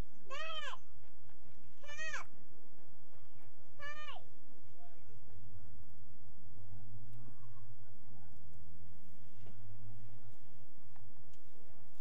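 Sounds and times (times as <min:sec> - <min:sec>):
child's high-pitched calls: 0:00.3 - 0:00.8, 0:01.8 - 0:02.3, 0:03.8 - 0:04.3.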